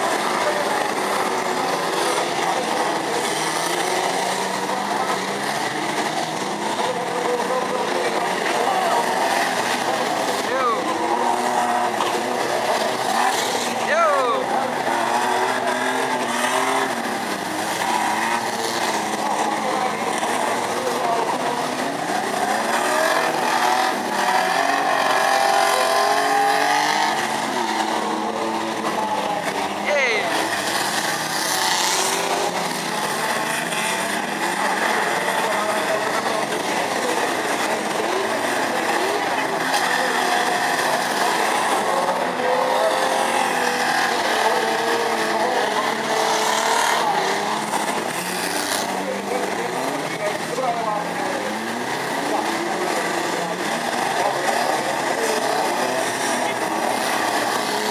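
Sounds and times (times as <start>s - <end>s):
racing car engines revving: 0.0s - 57.9s.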